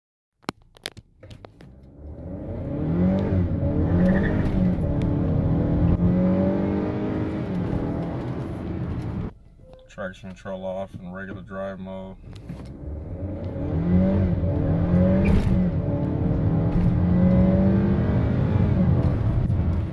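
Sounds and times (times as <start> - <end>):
car engine accelerating hard: 1.8 - 9.3, 12.6 - 19.9.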